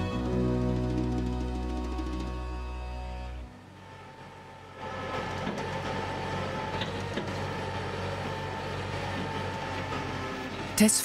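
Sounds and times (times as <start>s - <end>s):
tractor engine running: 0.0s - 11.0s.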